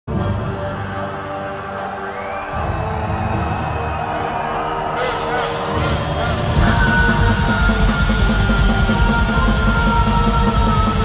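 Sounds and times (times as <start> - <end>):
crowd cheering: 0.2 - 11.0
metal band playing live: 4.9 - 11.0.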